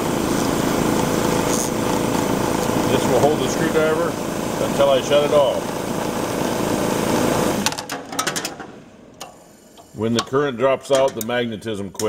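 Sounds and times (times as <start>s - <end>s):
burner motor hum: 0.0s - 11.2s.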